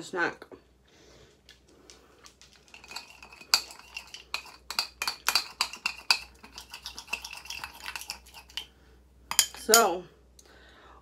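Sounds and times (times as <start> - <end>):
paste stirred in a bowl: 2.1 - 9.9.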